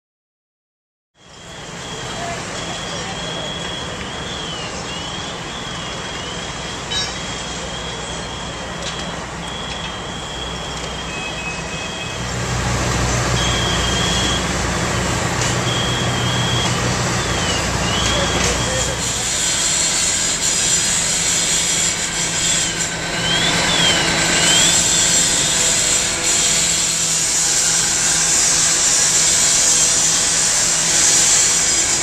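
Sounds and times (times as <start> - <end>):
diesel engines running: 1.2 - 32.0
high-pitched whine: 1.2 - 32.0
continuous rushing noise: 1.3 - 32.0.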